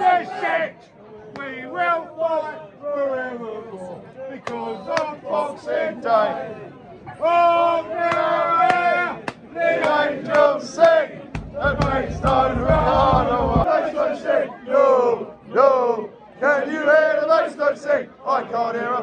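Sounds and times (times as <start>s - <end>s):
football supporters chanting: 0.0s - 2.7s, 4.3s - 19.0s
low microphone rumble: 11.4s - 13.7s.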